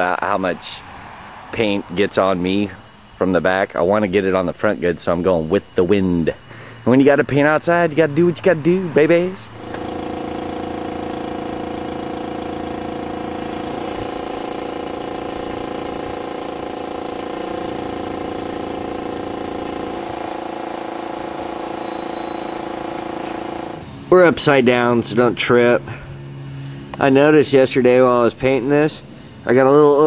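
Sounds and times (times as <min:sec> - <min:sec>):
motor humming: 0:09.1 - 0:27.3.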